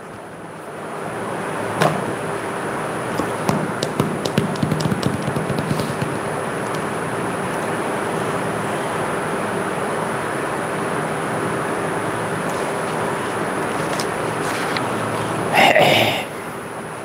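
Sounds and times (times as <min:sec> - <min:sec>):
steady background noise: 0:00.0 - 0:17.0
clicks and taps: 0:03.2 - 0:06.9.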